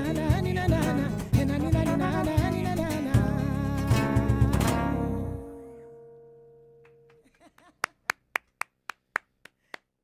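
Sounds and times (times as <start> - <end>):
sharp hand claps: 6.8 - 10.0.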